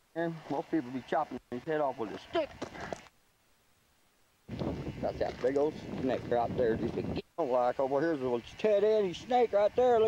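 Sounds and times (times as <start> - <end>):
man talking: 0.1 - 2.6, 5.0 - 10.0.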